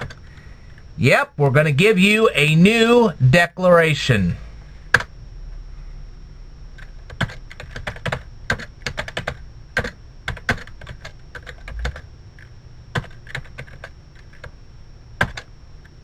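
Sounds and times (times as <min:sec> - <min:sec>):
typing on computer keyboard: 0:06.8 - 0:12.0, 0:13.0 - 0:14.5, 0:15.2 - 0:15.5.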